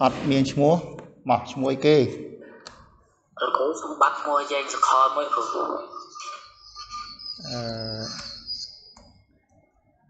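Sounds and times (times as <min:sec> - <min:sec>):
man saying ahh: 0:07.4 - 0:08.2.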